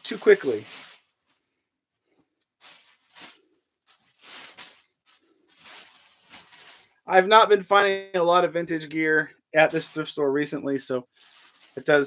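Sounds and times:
rustling of cotton t-shirts: 0:00.0 - 0:07.1, 0:09.7 - 0:10.2, 0:11.0 - 0:12.0.

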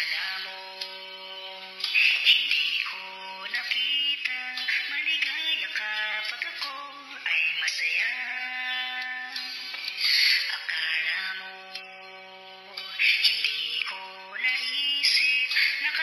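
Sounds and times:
autotuned voice singing: 0:00.0 - 0:16.0.

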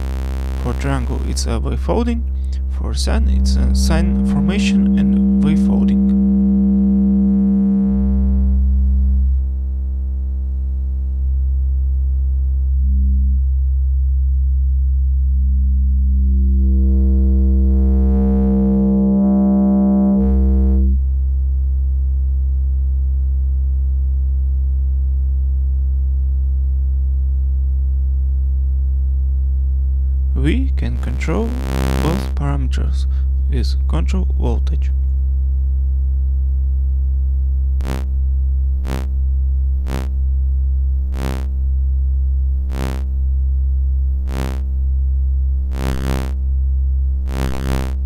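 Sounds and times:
low steady synthesiser tone: 0:00.0 - 0:22.2, 0:30.0 - 0:32.5, 0:37.6 - 0:48.0.

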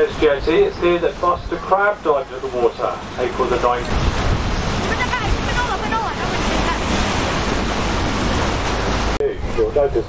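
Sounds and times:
water rushing past boat: 0:00.0 - 0:10.0
wind buffeting microphone: 0:00.0 - 0:10.0.

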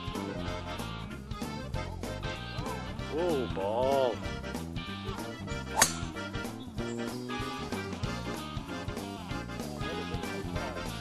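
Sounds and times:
background music: 0:00.0 - 0:11.0
golf club striking ball: 0:05.7 - 0:06.4.

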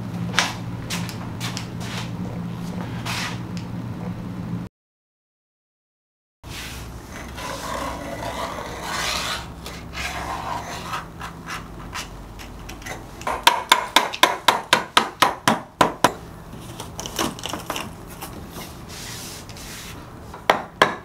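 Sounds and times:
tools scraping wood: 0:07.1 - 0:13.4.

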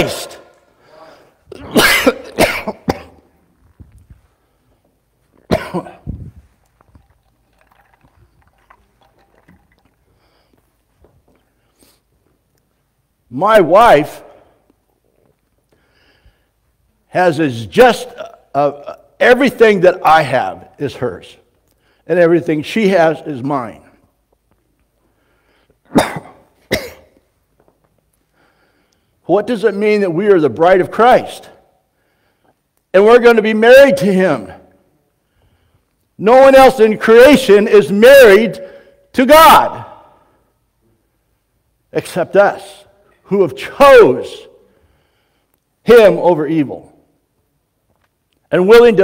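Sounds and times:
man coughing: 0:01.5 - 0:03.3, 0:05.4 - 0:06.1, 0:25.9 - 0:27.2.

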